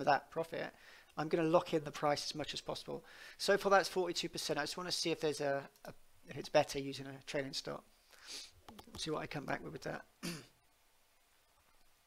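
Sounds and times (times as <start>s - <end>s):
man clearing throat with cough: 10.2s - 10.5s.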